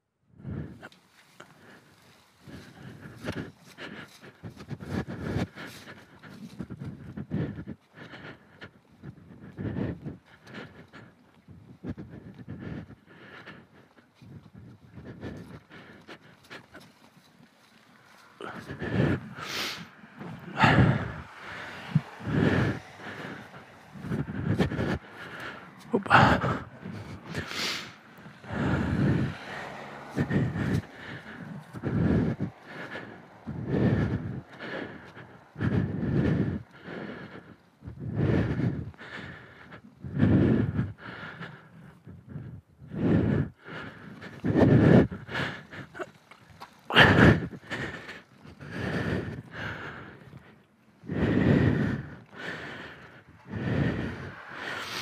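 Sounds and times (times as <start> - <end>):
man panting: 0.3 - 55.0.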